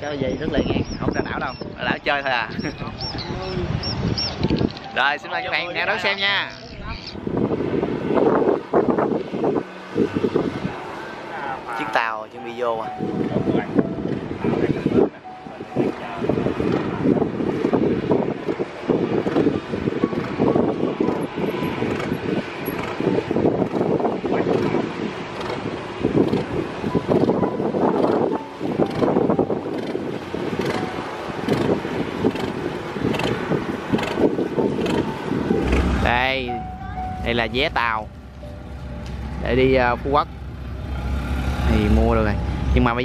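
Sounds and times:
speedboat engine: 0.0 - 43.0
wind buffeting microphone: 0.0 - 43.0.

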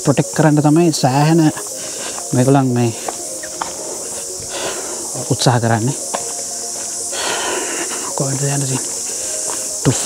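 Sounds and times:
steady high-pitched hiss: 0.0 - 10.0
man speaking: 2.3 - 3.1, 5.1 - 6.0, 8.1 - 8.9.

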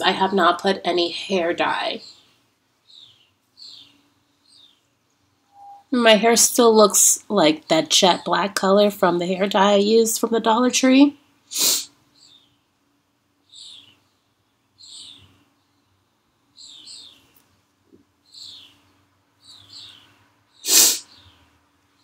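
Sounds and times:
small bird chirping: 1.6 - 5.9, 12.0 - 12.8, 13.4 - 17.4, 18.2 - 22.0.

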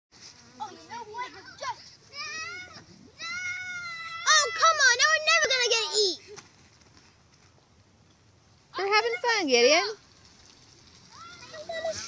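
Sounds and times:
children chattering: 0.5 - 6.4, 10.9 - 12.0
children shrieking: 2.2 - 5.5, 11.1 - 12.0.

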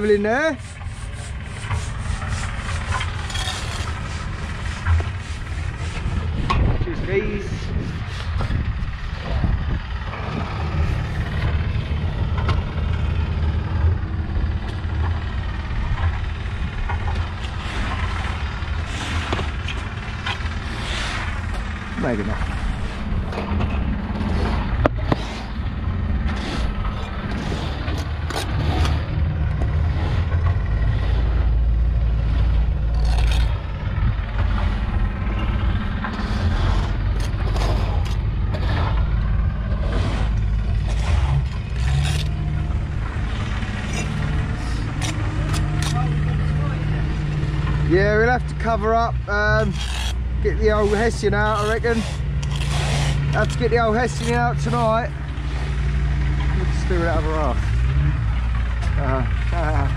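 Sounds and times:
low rumble: 0.0 - 59.9
trowel scraping and tapping bricks: 0.5 - 6.6, 49.6 - 55.0
indistinct voices: 35.2 - 58.1.

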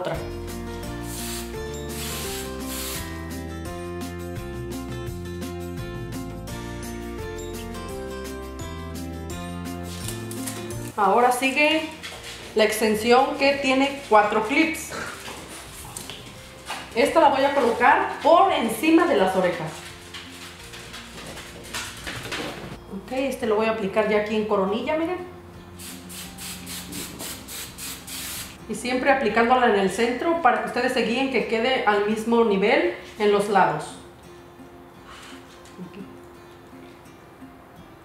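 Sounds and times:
background music: 0.0 - 38.0
aerosol hairspray hissing: 1.0 - 3.2, 25.8 - 28.6.

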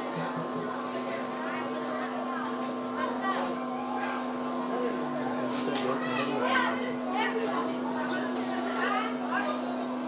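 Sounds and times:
people chattering: 0.0 - 10.0
steady low hum: 0.0 - 10.0
children's voices: 1.3 - 4.4, 5.8 - 9.4.

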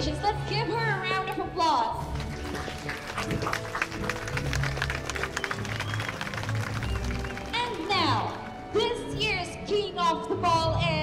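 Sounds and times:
crowd applauding: 2.1 - 8.8.

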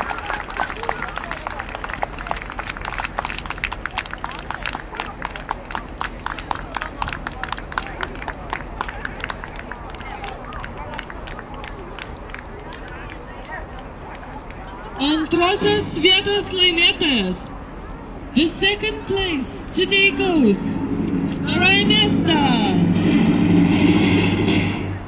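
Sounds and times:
audience clapping in time: 0.0 - 14.7.

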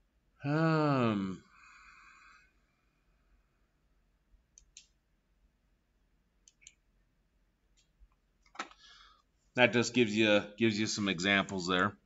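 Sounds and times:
faint computer mouse clicks: 4.6 - 5.0, 6.4 - 6.8.

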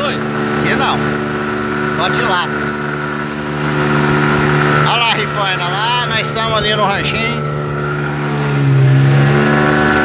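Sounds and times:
outboard motor running: 0.0 - 10.0
water splashing on hull: 0.0 - 10.0.

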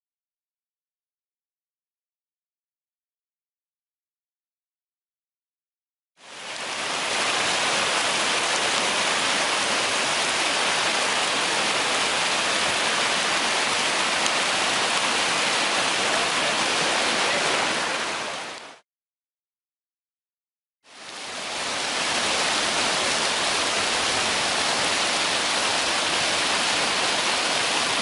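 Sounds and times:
whitewater rapids rushing: 6.3 - 18.8, 21.0 - 28.0.

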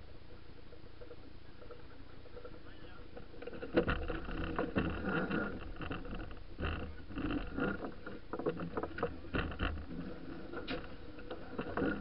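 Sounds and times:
rush of wind and water: 1.4 - 12.0.

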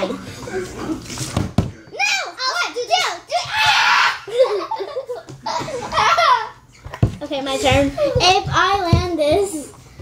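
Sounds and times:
girls laughing and squealing: 3.3 - 7.0.

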